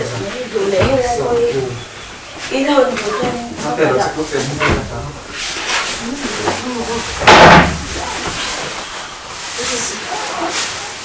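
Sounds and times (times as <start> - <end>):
sudden loud bang: 6.8 - 8.6.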